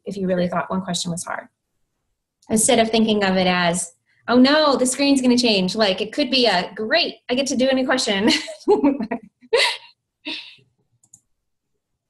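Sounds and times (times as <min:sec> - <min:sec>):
woman laughing: 0:08.2 - 0:10.5.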